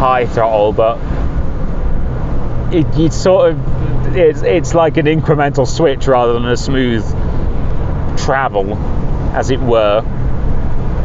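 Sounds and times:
car cabin engine and road noise: 0:00.0 - 0:11.0.

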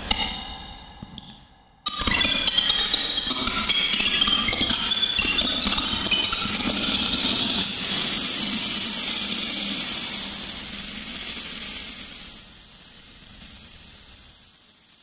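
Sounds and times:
hiss: 0:06.8 - 0:15.0.

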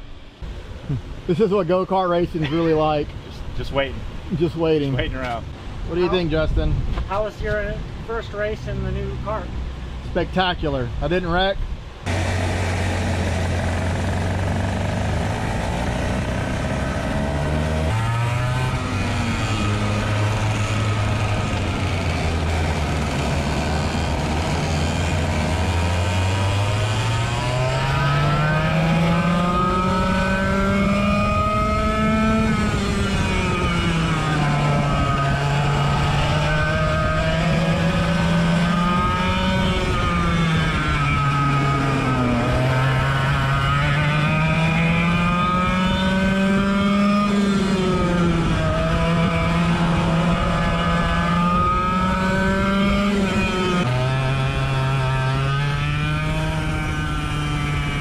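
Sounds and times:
kart engine revving: 0:12.0 - 0:58.0.

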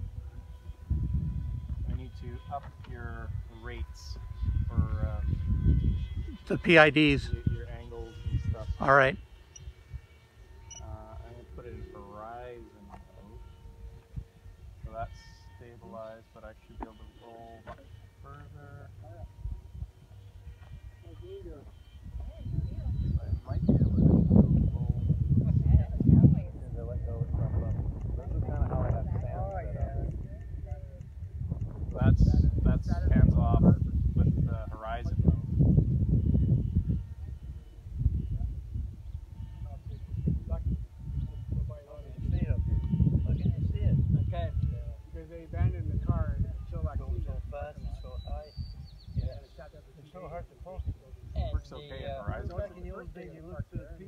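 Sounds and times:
wind rumbling on microphone: 0:00.0 - 0:15.8, 0:19.0 - 0:54.0
quiet indistinct voices: 0:01.8 - 0:54.0.

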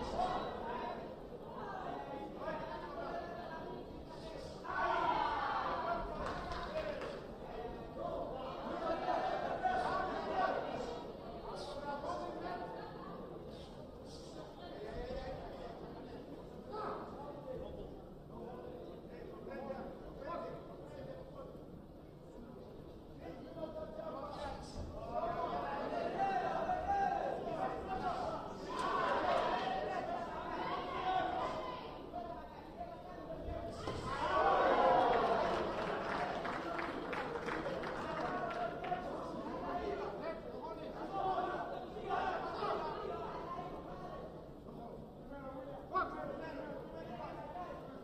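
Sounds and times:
voices shouting and talking: 0:00.0 - 0:17.5, 0:23.6 - 0:44.5
steady background noise: 0:00.0 - 0:48.0.

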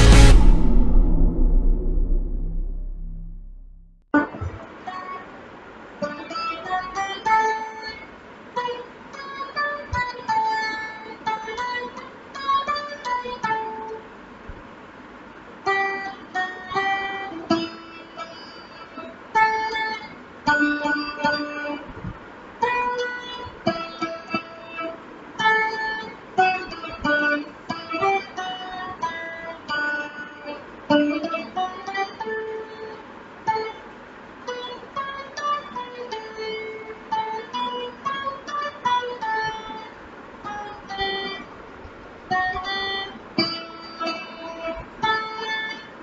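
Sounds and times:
electric guitar slow melody: 0:00.0 - 0:03.6.

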